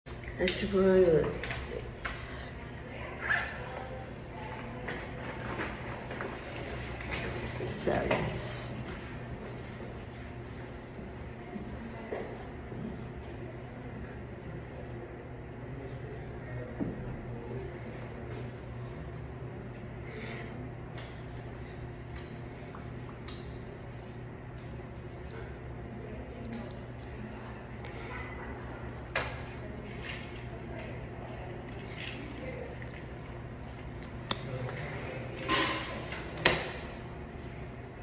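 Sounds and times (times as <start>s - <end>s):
steady low hum: 0.1s - 38.0s.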